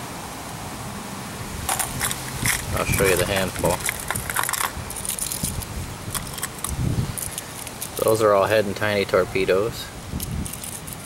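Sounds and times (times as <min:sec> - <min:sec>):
fishing lures clinking and jingling: 0:01.7 - 0:08.0.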